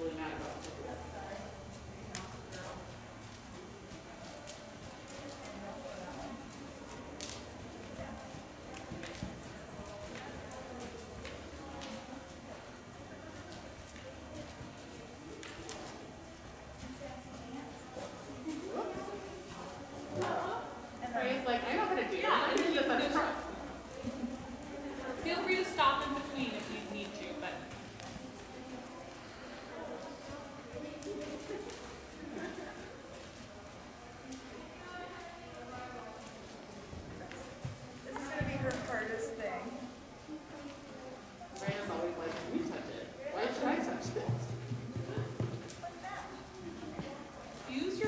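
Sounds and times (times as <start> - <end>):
horse hooves in deep sand: 44.0 - 45.9.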